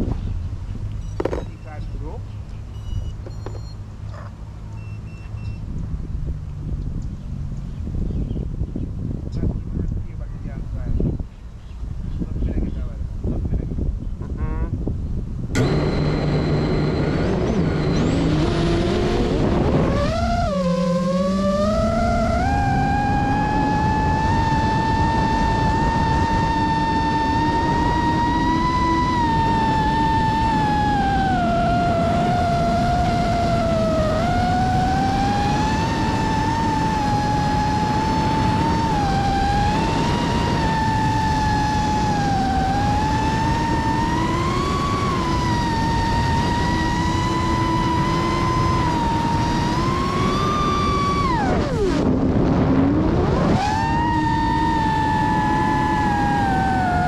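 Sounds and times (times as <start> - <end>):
drone motors whining: 0.9 - 5.7, 15.5 - 57.0
motor click: 15.6 - 18.2.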